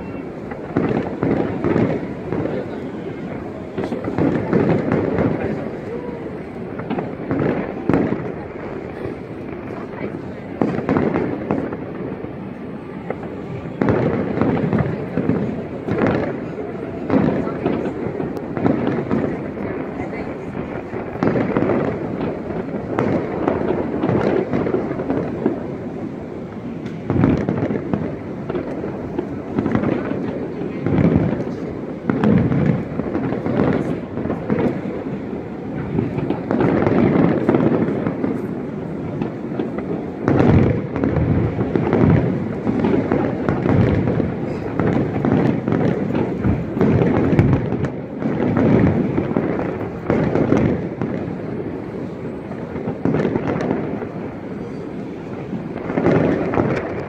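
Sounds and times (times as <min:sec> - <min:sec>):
firework booms and crackling: 0:00.0 - 0:57.0
loud firework bangs: 0:00.0 - 0:57.0.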